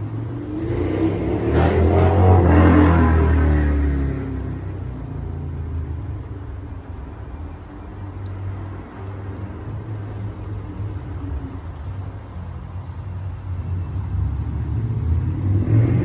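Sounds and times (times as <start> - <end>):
car driving past: 0.0 - 5.8, 13.6 - 16.0
low steady rumble: 0.0 - 16.0.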